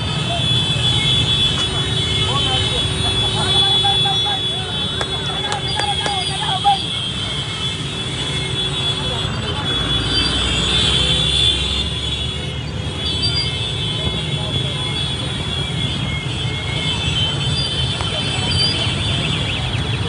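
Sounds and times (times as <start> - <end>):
many voices: 0.0 - 11.4, 13.2 - 20.0.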